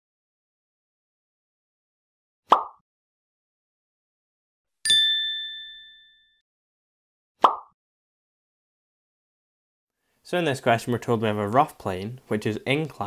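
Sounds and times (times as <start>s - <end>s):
bright bell-like ding: 4.9s - 6.4s.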